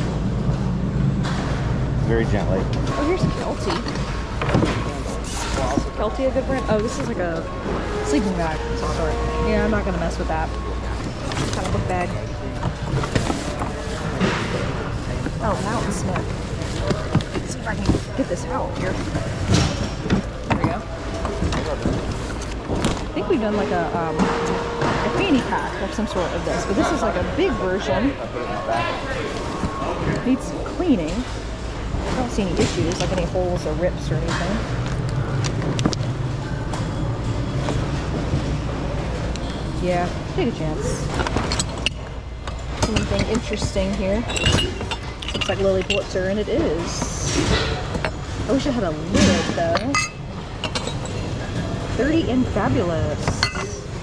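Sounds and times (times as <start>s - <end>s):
backpack rustling and scraping: 10.9s - 20.4s.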